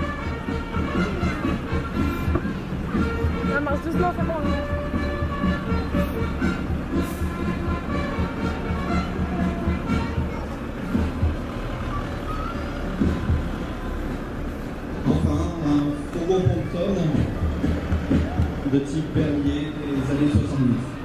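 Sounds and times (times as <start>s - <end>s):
crowd chatter: 0.0s - 21.0s
low rumble of passing vehicles: 0.0s - 21.0s
music from loudspeakers: 0.0s - 21.0s.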